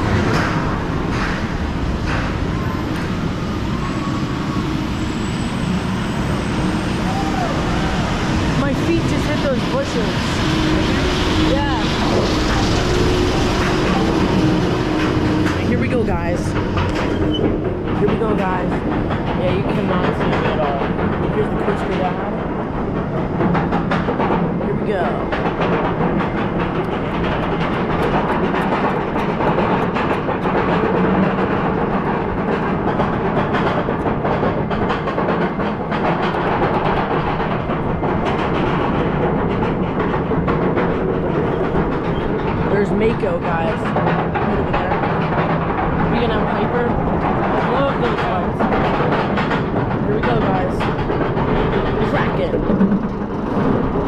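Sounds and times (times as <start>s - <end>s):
roller coaster chain lift rattle: 0.0s - 54.0s.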